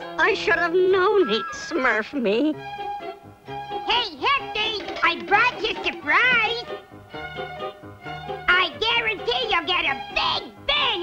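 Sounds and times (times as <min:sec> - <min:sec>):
light background music: 0:00.0 - 0:11.0
high cartoon voice exclamation: 0:00.9 - 0:02.1, 0:08.6 - 0:11.0.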